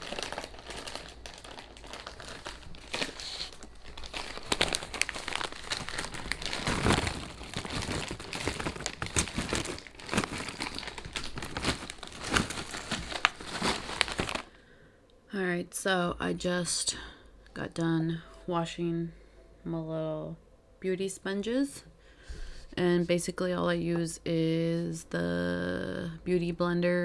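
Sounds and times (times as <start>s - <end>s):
plastic snack bag crinkling: 0.0s - 14.6s.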